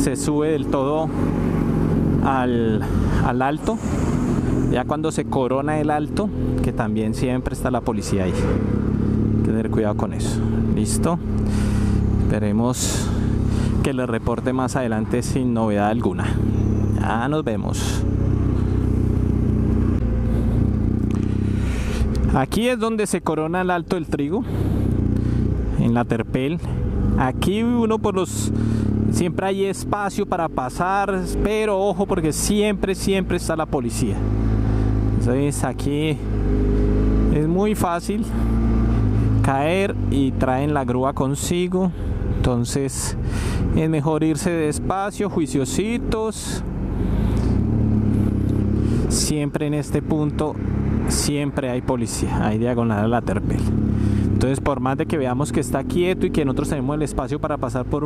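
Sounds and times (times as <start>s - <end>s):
road and wind noise: 0.0s - 58.0s
motorcycle engine running steadily: 4.4s - 58.0s.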